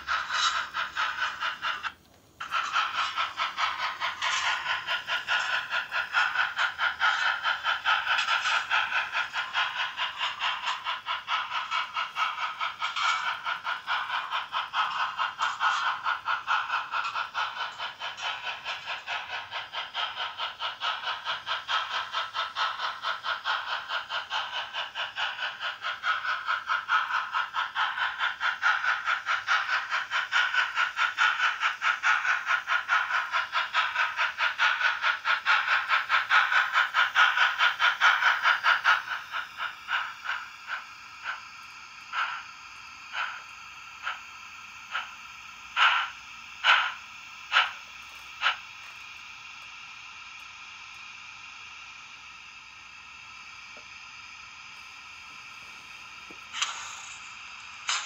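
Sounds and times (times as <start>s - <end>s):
model locomotive steam chuffs: 0.0s - 58.0s.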